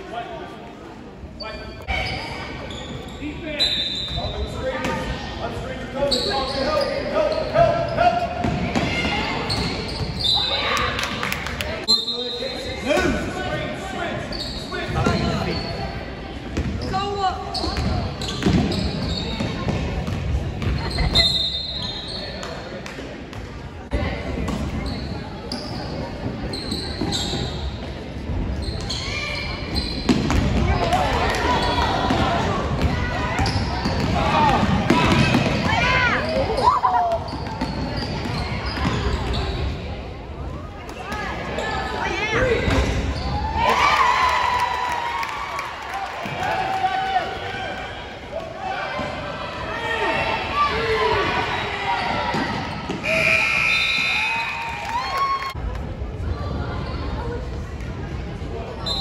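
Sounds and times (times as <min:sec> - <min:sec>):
basketball bouncing on gym floor: 0:30.0 - 0:31.0.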